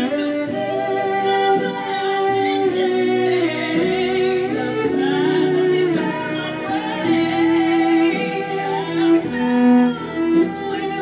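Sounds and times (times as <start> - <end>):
cello bowed in long notes: 0.0 - 11.0.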